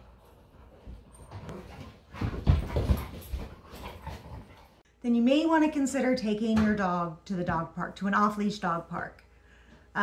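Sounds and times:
dogs play-fighting and vocalizing: 0.0s - 4.8s.

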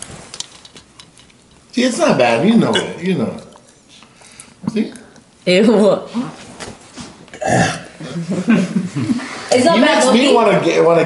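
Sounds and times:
man gagging and retching: 7.4s - 8.0s.

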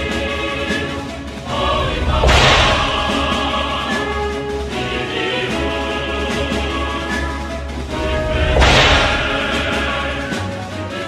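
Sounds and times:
music: 0.0s - 11.0s
whip-like swoosh and crash: 1.5s - 3.7s, 8.1s - 9.9s.

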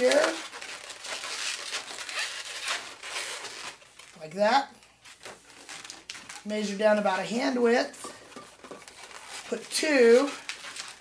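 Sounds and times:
balloons rubbing and rustling: 0.0s - 11.0s.

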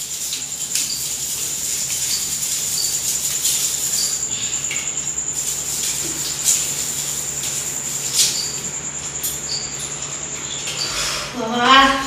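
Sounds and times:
wiping of metal grille: 0.0s - 8.9s
high-pitched insect trill: 0.0s - 12.0s.

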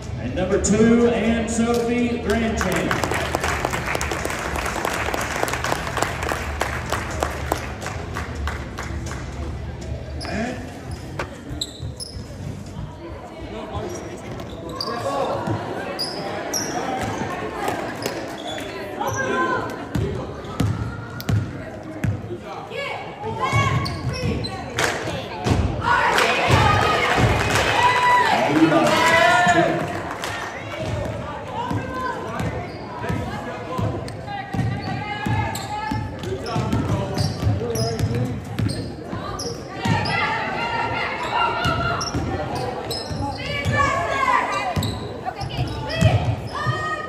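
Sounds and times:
crowd and player voices: 0.0s - 47.0s
people clapping: 2.6s - 9.5s, 26.1s - 30.8s
sneaker squeaks: 10.1s - 12.8s, 13.8s - 19.5s, 23.4s - 24.7s, 31.7s - 33.3s, 34.5s - 40.4s, 41.0s - 47.0s.

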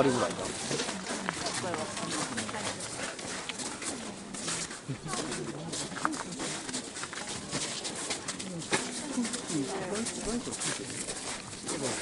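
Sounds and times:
murmur of crowd talking: 0.0s - 12.0s.

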